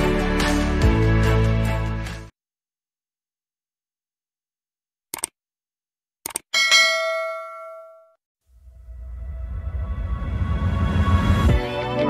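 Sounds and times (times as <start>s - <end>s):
notification bell chime: 6.6s - 8.1s
low rumbling music: 8.6s - 12.0s.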